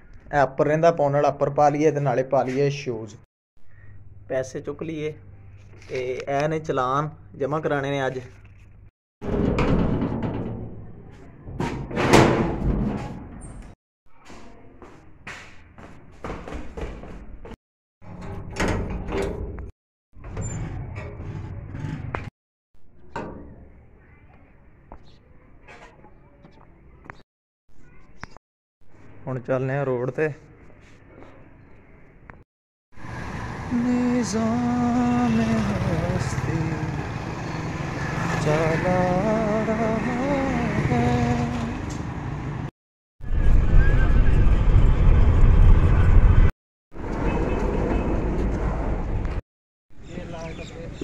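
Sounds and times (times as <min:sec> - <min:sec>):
sheet-metal door rattling and banging: 0:09.2 - 0:11.0, 0:11.6 - 0:13.4
person singing long notes: 0:38.4 - 0:41.8.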